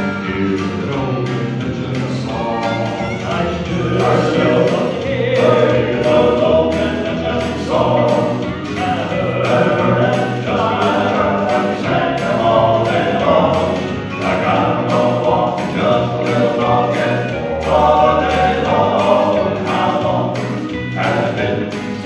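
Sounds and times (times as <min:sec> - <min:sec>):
low bass voice: 0:00.0 - 0:04.6
male quartet singing in harmony: 0:00.0 - 0:22.0
ticking accompaniment beat: 0:00.0 - 0:22.0.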